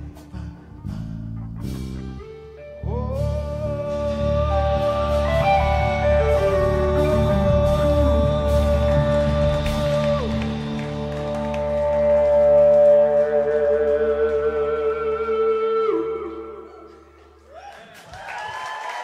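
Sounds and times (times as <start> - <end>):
live rock band chord: 0.0 - 13.2
audience clapping and cheering: 8.2 - 15.4, 17.1 - 19.0.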